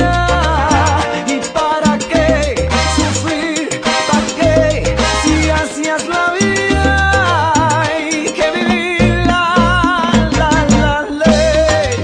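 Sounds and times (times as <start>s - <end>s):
latin-style song: 0.0s - 12.0s.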